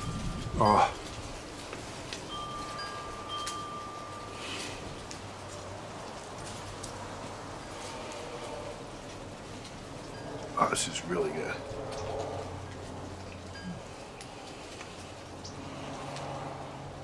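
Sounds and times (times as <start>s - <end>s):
soft ringing chime notes: 2.3s - 4.7s, 13.6s - 13.9s.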